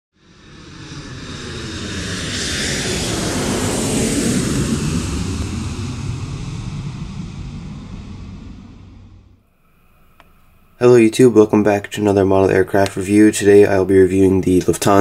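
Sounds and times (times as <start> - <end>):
jet aircraft flying past: 0.2 - 15.0.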